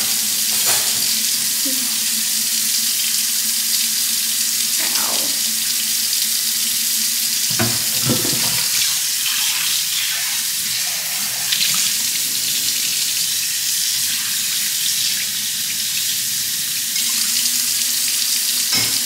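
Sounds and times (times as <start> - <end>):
tap water running into steel sink: 0.0 - 19.0.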